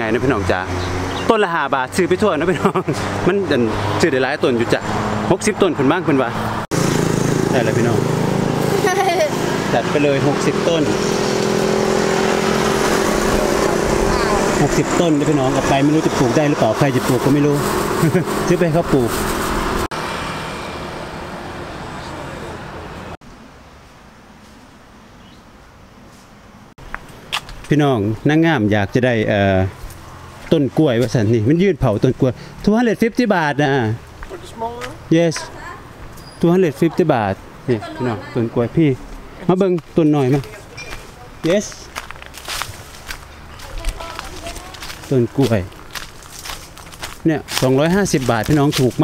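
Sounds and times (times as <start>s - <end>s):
hiss of passing vehicles: 2.4s - 5.3s, 6.3s - 25.0s, 32.2s - 32.7s
footsteps on garden path: 26.0s - 27.9s, 29.1s - 32.8s, 34.0s - 36.2s, 38.8s - 49.0s.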